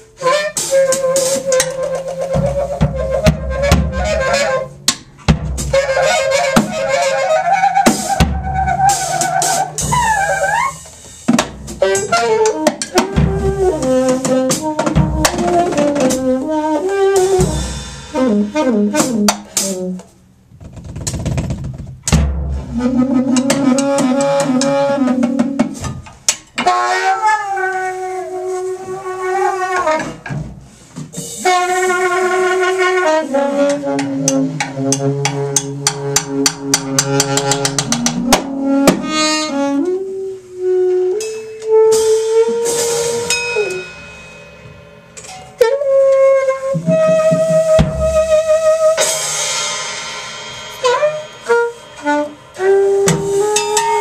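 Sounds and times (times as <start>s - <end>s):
saxophone improvising jazz: 0.0s - 4.8s, 5.6s - 20.2s, 22.6s - 25.8s, 26.6s - 30.3s, 31.4s - 43.9s, 45.5s - 49.2s, 50.8s - 54.0s
drum kit sharp hits: 0.6s - 7.2s, 7.8s - 20.2s, 20.9s - 26.7s, 33.7s - 39.5s, 41.2s - 45.9s, 46.7s - 54.0s.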